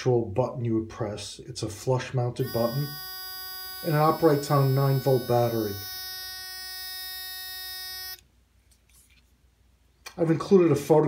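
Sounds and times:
electronic scanner buzz: 2.4 - 8.2.

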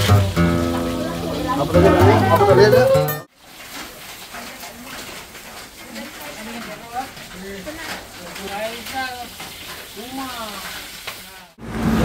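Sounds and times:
steady hiss: 0.0 - 2.2
background voices: 0.0 - 3.3.

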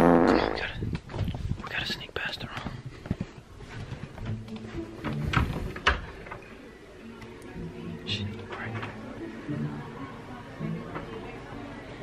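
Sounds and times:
person whispering: 1.6 - 2.6
background music: 4.2 - 6.2, 6.8 - 12.0.

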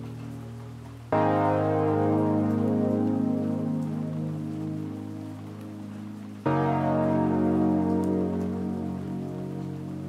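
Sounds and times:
mellow keyboard chord: 0.0 - 10.0
rain-like crackling hiss: 0.0 - 10.0.

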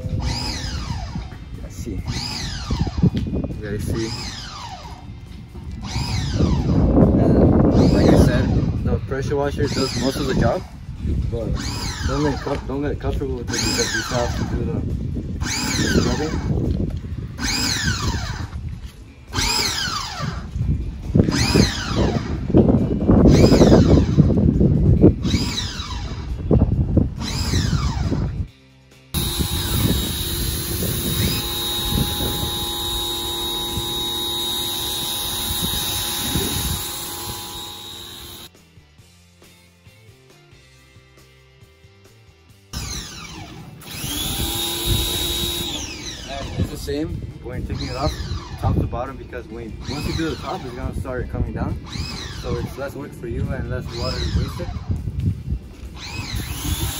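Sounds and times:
pressure washer motor whining: 29.2 - 38.5, 42.8 - 46.8.

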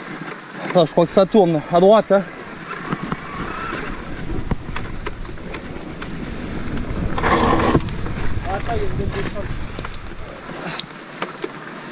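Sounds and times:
tyres rumbling on dirt: 0.0 - 11.1
bike clicks and rattles: 2.3 - 11.7
wind on microphone: 2.4 - 10.8.

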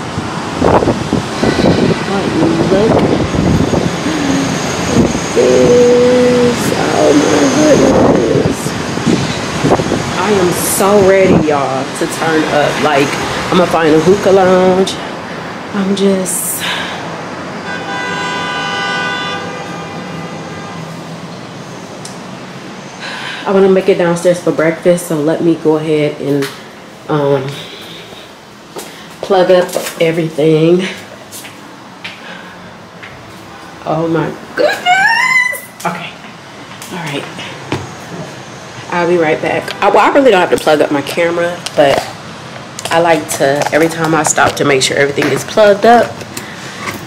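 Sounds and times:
wind buffeting microphone: 0.0 - 16.2
distant city traffic: 0.0 - 47.0
horn blast: 17.6 - 21.0.

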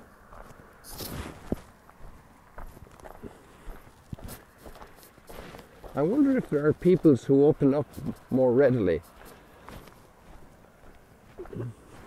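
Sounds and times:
footsteps walking: 0.0 - 12.0.

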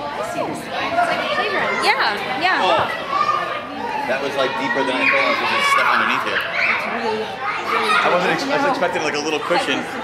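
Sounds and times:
children's voices and chatter: 0.0 - 10.0.

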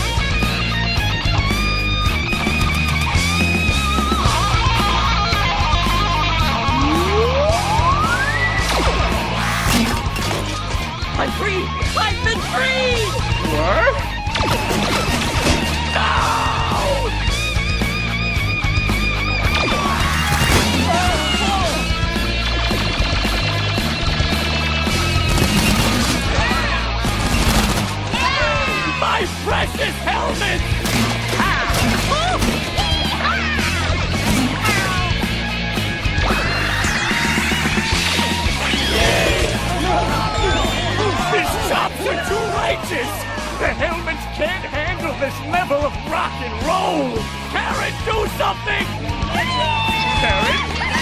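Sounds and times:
bass and drums: 0.0 - 51.0
squealing bent guitar notes: 2.7 - 10.1.

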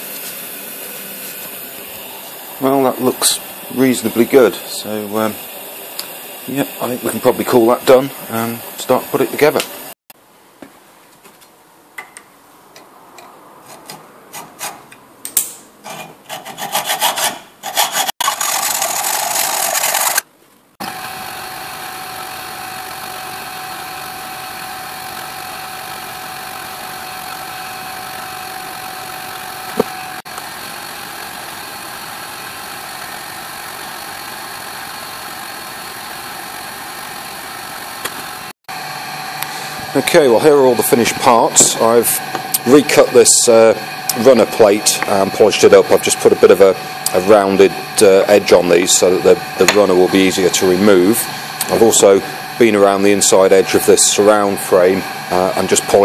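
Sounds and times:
steady mechanical hum: 0.0 - 56.0
hand file rasping on metal: 15.8 - 19.2.

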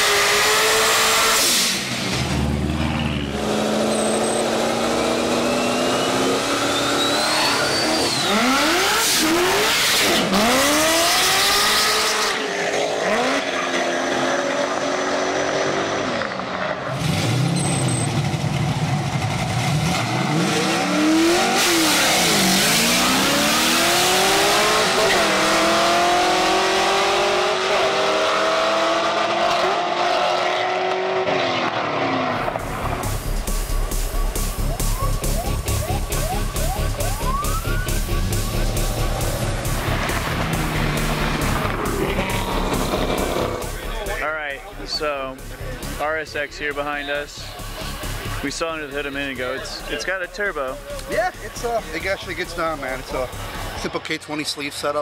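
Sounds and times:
cars accelerating through gears: 0.0 - 33.2, 34.7 - 44.2
car engines revving: 0.0 - 55.0
tire squeal: 2.8 - 10.2, 17.4 - 18.3.

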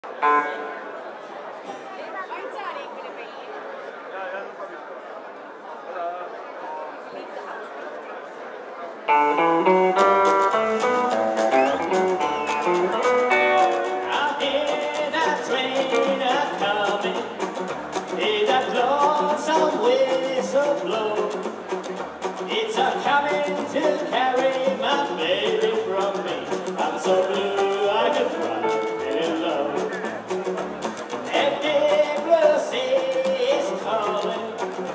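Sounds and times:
electric guitar melody: 0.1 - 0.9, 9.1 - 34.9
acoustic rhythm guitar: 9.1 - 34.9
upright double bass: 9.1 - 34.9
drums: 9.2 - 34.9.

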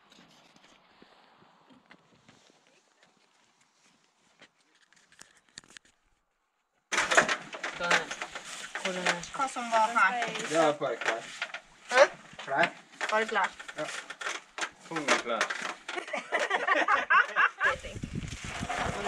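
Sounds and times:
people talking: 7.8 - 8.2, 8.8 - 11.3, 11.9 - 14.0, 14.9 - 15.5, 16.8 - 18.0, 18.8 - 19.0.

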